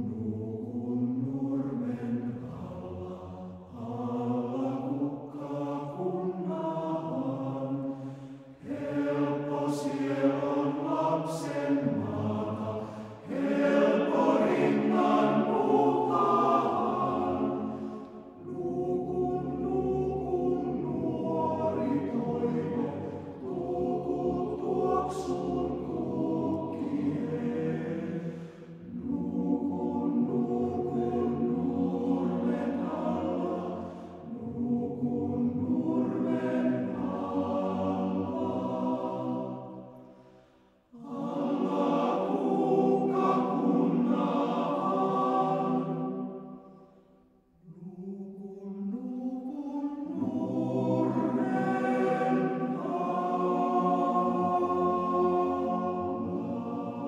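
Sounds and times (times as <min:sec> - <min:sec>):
male choir singing unaccompanied: 0:00.0 - 0:40.0, 0:41.0 - 0:46.6, 0:47.6 - 0:57.0.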